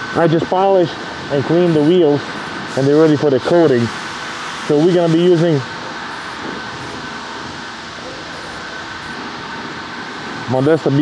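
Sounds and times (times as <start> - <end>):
faint high whine: 0.0 - 11.0
steady hiss: 0.0 - 11.0.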